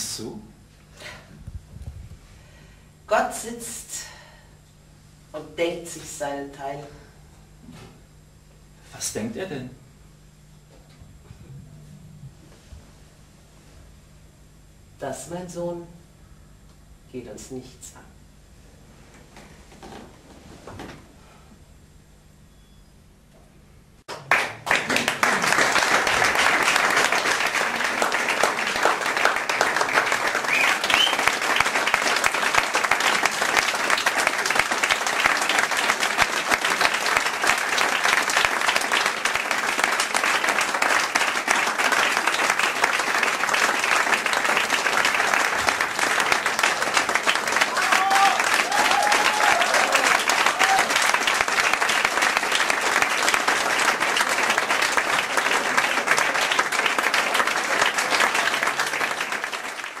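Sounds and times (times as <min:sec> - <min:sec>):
audience applauding: 0:24.1 - 1:00.0.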